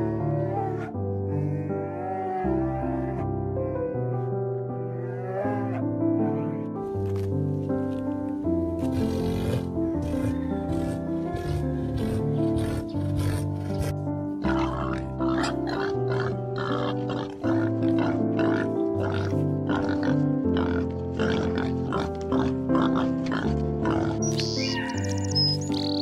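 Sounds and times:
background music with held notes: 0:00.0 - 0:26.0
pigs grunting: 0:08.7 - 0:26.0.

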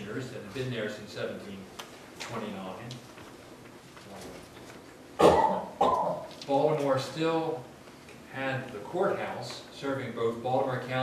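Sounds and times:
person coughing: 0:05.2 - 0:06.2.

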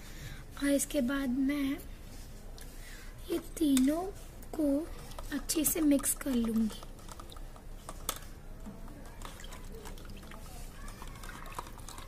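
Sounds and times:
faint liquid sloshing: 0:04.1 - 0:12.0
spoons tapping cups: 0:05.2 - 0:08.2.

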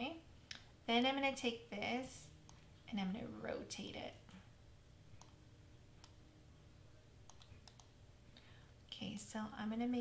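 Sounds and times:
computer mouse clicks: 0:02.4 - 0:02.6, 0:05.2 - 0:05.4, 0:06.0 - 0:06.2, 0:07.3 - 0:08.0.

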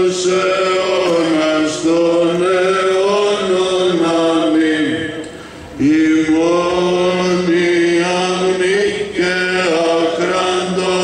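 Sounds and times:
man chanting a hymn: 0:00.0 - 0:11.0.

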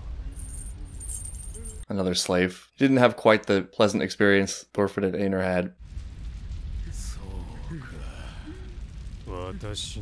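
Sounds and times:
high metallic jingle: 0:00.3 - 0:01.9
man speaking: 0:01.9 - 0:05.7, 0:06.9 - 0:08.5, 0:09.3 - 0:10.0
low rumble: 0:05.8 - 0:10.0.

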